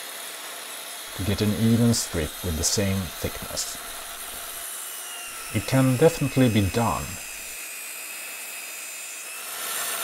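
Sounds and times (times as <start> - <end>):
circular saw whine: 0.2 - 10.0.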